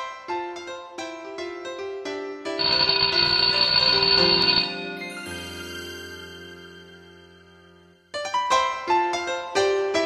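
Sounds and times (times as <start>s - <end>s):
light keyboard music: 0.0s - 10.0s
bright bell-like ringing: 2.6s - 6.6s.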